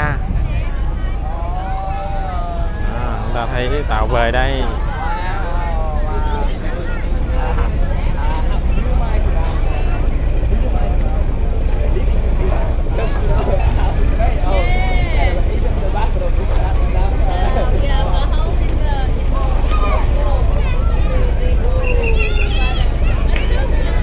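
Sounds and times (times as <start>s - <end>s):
boat engine idling: 0.0s - 24.0s
passengers chattering: 0.0s - 24.0s.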